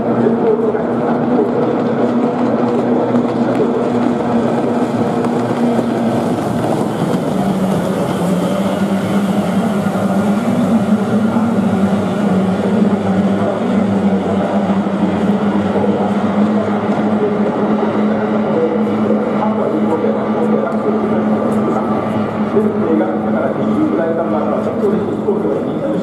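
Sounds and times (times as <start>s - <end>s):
racing boat engines droning: 0.0s - 26.0s.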